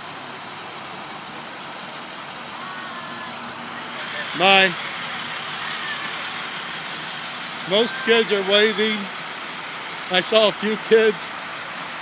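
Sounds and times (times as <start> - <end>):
bus engine running: 0.0 - 12.0.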